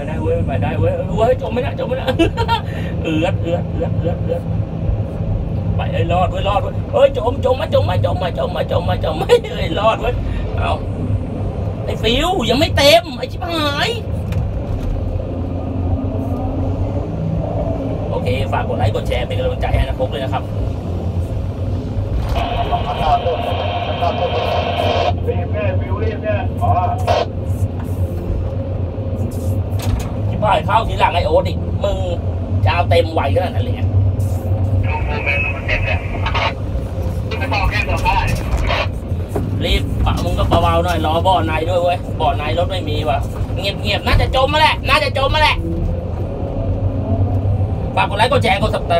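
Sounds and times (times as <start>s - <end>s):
diesel engine rumbling: 0.0s - 48.9s
diesel engine running under load: 2.1s - 8.1s.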